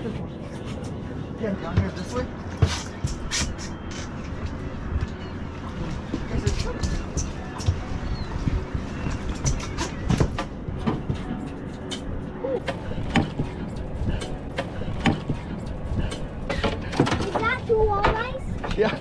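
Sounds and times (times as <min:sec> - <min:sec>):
wind rumble on microphone: 0:04.4 - 0:11.2.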